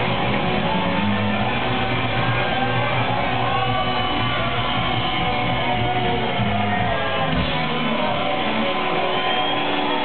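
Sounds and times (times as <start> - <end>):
drums: 0.0 - 10.0
electric guitars strumming: 0.0 - 10.0.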